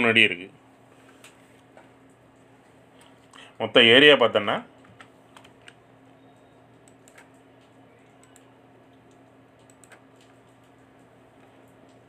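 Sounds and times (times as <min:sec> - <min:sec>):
low electrical hum: 0:00.0 - 0:12.0
mouse and keyboard clicking: 0:06.8 - 0:07.4, 0:08.2 - 0:10.8.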